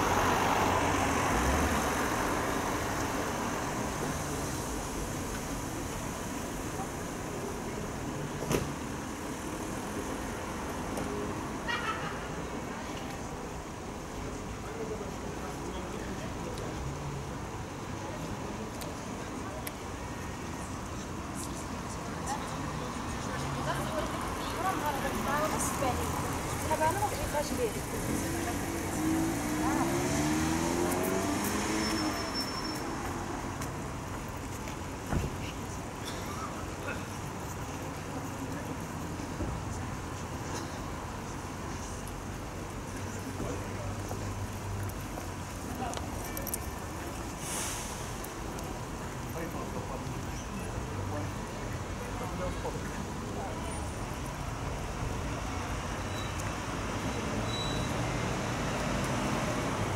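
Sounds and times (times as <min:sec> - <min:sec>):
car traffic: 0:00.0 - 0:59.9
passers-by talking: 0:00.0 - 0:59.9
vehicle pulling away: 0:27.6 - 0:33.2, 0:55.4 - 0:59.9
brief hiss: 0:47.3 - 0:48.4.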